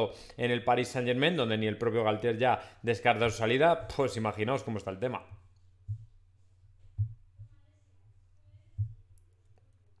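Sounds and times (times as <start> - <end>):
steady low hum: 5.2 - 10.0
low thump: 5.8 - 6.2, 6.8 - 7.6.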